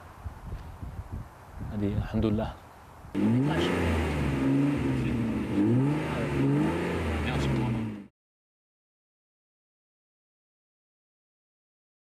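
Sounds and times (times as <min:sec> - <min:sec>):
car engine revving: 0:03.2 - 0:08.1.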